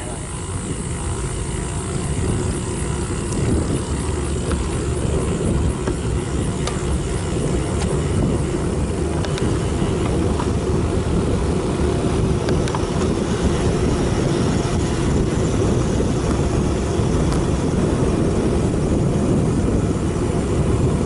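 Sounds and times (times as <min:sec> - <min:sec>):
bicycle tyre and road noise: 0:00.0 - 0:21.0
wind noise on microphone: 0:00.0 - 0:21.0.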